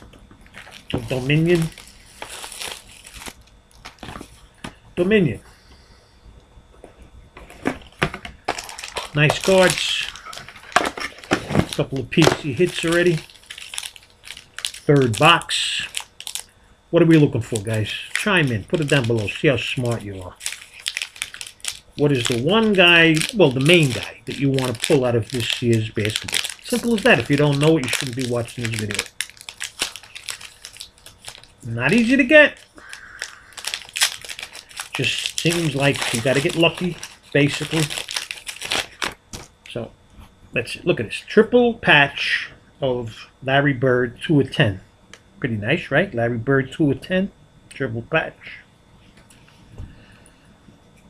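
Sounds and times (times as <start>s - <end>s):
packaging crackling and clicking: 0.0s - 4.4s, 7.6s - 16.5s, 17.4s - 39.8s.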